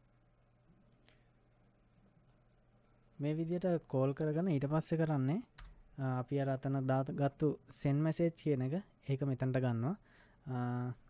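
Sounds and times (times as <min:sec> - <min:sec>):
person speaking: 0:03.0 - 0:11.0
computer keyboard typing: 0:05.5 - 0:05.8.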